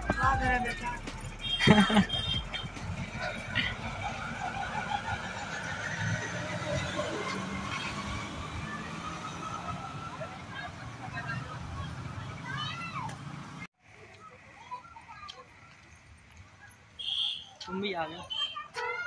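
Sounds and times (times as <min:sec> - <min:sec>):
low traffic rumble: 0:00.0 - 0:19.0
person laughing: 0:01.5 - 0:05.2
faint voices: 0:08.6 - 0:17.6.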